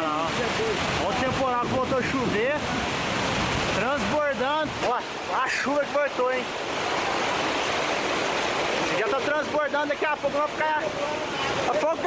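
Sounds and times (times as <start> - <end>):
floodwater rushing: 0.0 - 12.0
heavy rain falling: 0.0 - 12.0.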